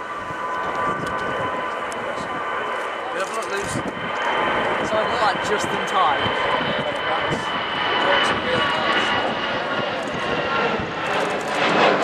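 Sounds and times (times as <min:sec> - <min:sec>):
jet engines whining: 0:00.0 - 0:12.0.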